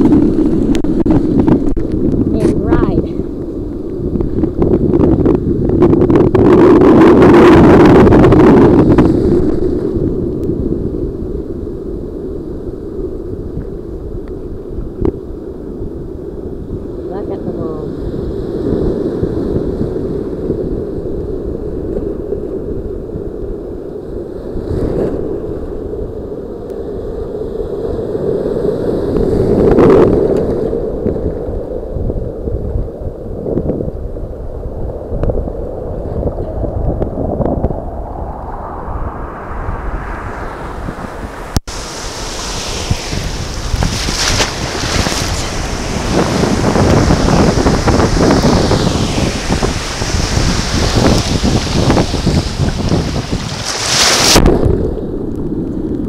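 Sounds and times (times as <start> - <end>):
muffled ocean surf: 0.0 - 56.0
wind buffeting microphone: 0.0 - 56.0.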